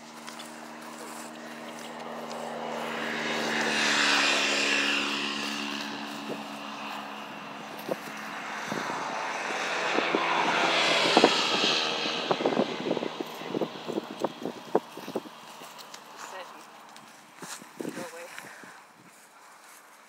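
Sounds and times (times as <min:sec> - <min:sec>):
steady engine drone: 0:00.0 - 0:19.4.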